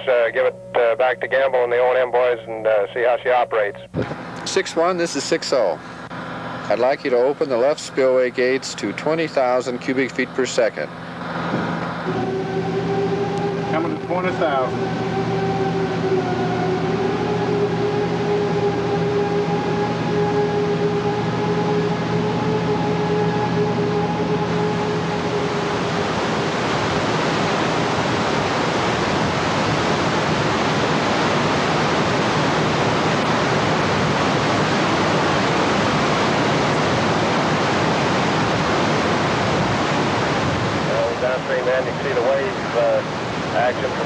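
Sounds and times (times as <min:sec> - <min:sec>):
even-pitched hum: 0:00.0 - 0:44.0
steady rumble: 0:00.0 - 0:44.0.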